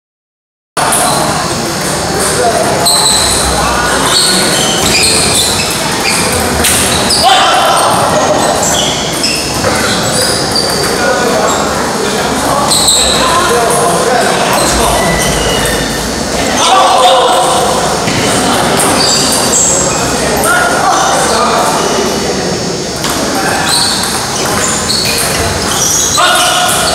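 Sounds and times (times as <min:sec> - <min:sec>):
murmur of voices: 0:00.8 - 0:26.9.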